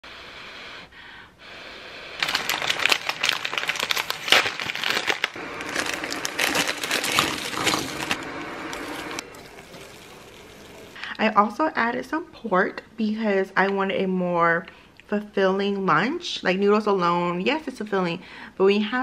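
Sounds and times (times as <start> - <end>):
seasoning packet crinkling: 2.2 - 11.0.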